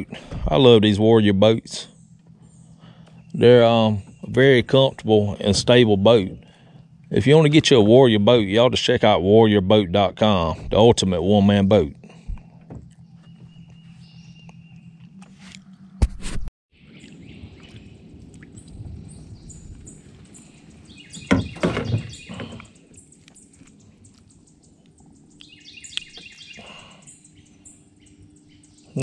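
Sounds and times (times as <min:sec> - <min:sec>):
birds chirping: 0:00.0 - 0:15.9, 0:16.8 - 0:29.0
low background hum: 0:00.0 - 0:16.0, 0:16.8 - 0:29.0.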